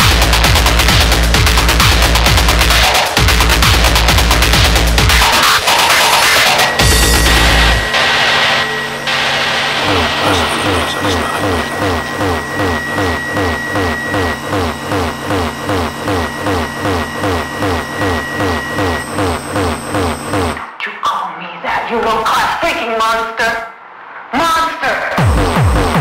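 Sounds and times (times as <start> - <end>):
industrial electronic music: 0.0 - 20.8, 25.1 - 26.0
steady high whine: 0.0 - 20.8.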